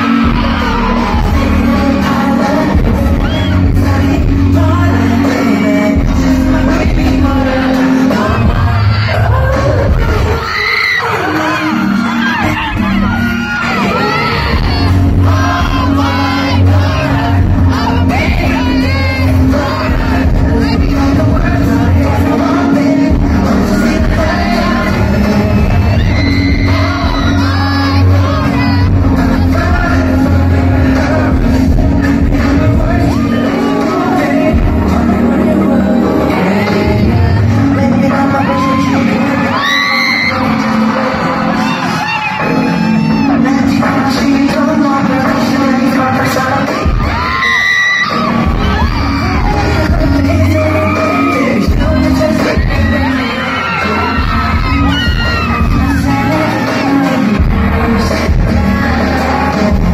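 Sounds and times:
dance music over loudspeakers: 0.0s - 59.9s
fans screaming and cheering: 0.0s - 59.9s.

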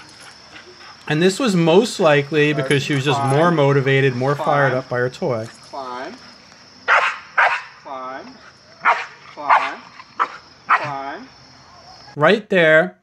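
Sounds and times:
dog barking: 6.9s - 7.8s, 8.8s - 11.0s.

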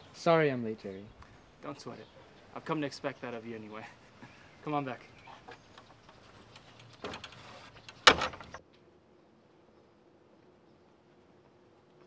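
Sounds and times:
wooden gate pushed open: 5.5s - 8.6s
gate banging shut: 7.0s - 8.6s.

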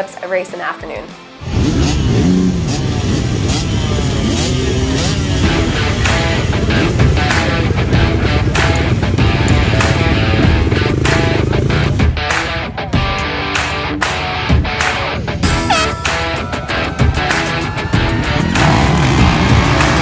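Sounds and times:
background music: 0.0s - 20.0s
dirt bike engines revving: 1.4s - 12.1s, 17.5s - 20.0s.

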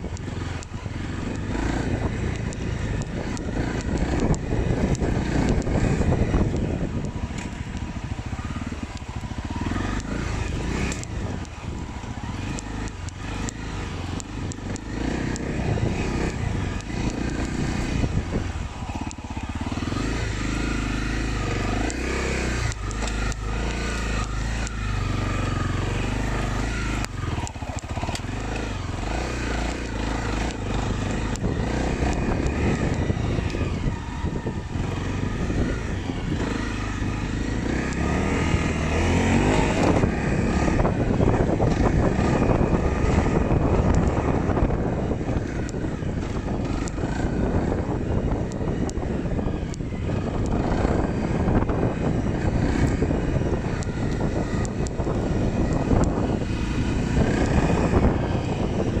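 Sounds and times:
dirt bike engine: 0.0s - 59.0s.

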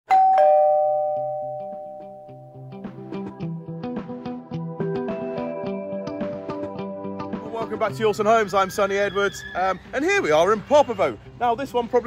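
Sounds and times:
two-note ding-dong chime: 0.1s - 2.6s
soft background music: 1.1s - 12.0s.

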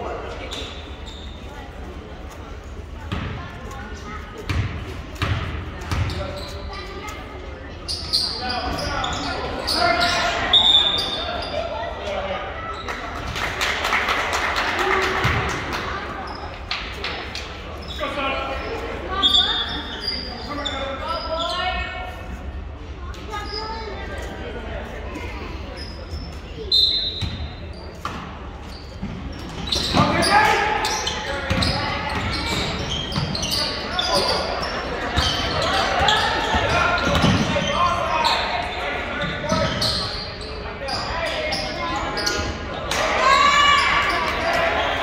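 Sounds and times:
people shouting and cheering: 42.8s - 45.0s.

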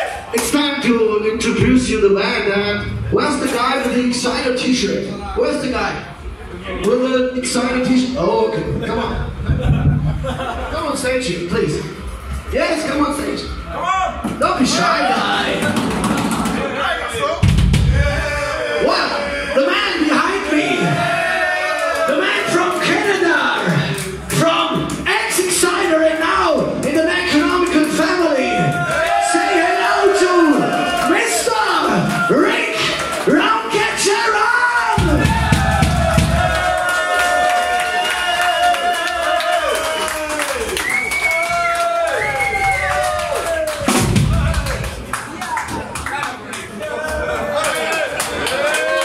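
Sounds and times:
voices in a loud club: 0.0s - 49.0s
low rumble: 1.4s - 4.6s, 8.7s - 14.7s
drum hit with cymbal crash: 1.6s - 4.0s, 17.4s - 18.3s, 35.0s - 36.6s, 43.9s - 44.8s
crowd shouting: 13.3s - 23.9s, 28.0s - 40.7s.

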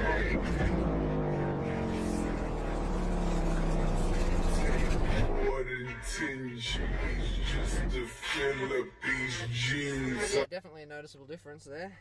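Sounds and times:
car stereo song with heavy bass: 0.0s - 12.0s.

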